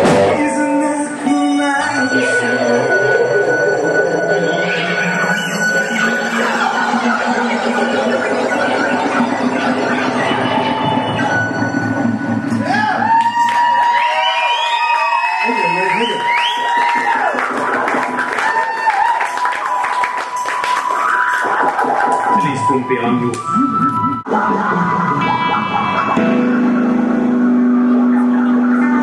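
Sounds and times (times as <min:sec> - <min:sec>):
sliding high-pitched tones: 0:00.0 - 0:13.2
rock band sustained notes: 0:00.0 - 0:13.4, 0:24.3 - 0:29.0
crowd voices: 0:00.0 - 0:13.9, 0:21.4 - 0:29.0
steady high whine: 0:01.1 - 0:13.6, 0:22.4 - 0:29.0.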